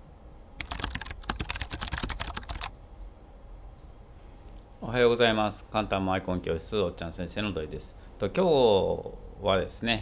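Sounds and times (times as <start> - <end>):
keyboard key clicks: 0.6 - 2.7.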